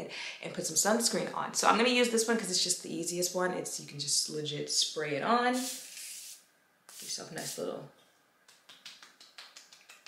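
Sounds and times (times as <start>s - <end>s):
hands rubbing skin swishing: 8.5s - 10.0s.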